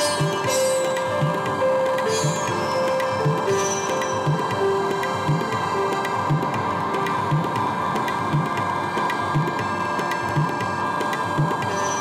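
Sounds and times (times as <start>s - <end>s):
light ticking percussion: 0.0s - 12.0s
sustained synthesizer pad: 0.0s - 12.0s.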